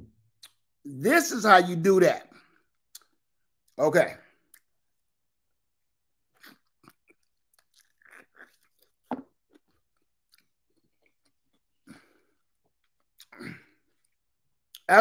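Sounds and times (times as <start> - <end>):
wet chewing mouth sounds: 6.3 - 9.0.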